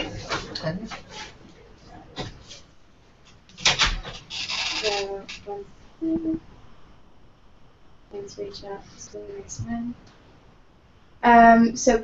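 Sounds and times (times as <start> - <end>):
low hum-like voice sound: 4.8 - 6.6.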